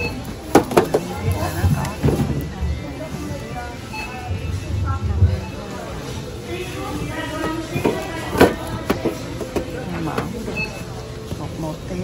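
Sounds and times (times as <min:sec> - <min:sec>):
music: 0:00.0 - 0:11.3
background chatter: 0:00.0 - 0:12.0.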